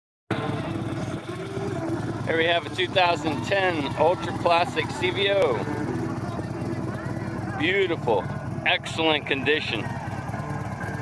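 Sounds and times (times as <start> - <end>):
motorcycle engine idling: 0.3 - 11.0.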